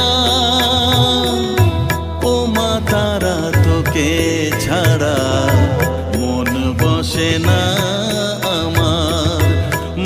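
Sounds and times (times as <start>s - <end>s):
devotional-style music with percussion: 0.0s - 10.0s.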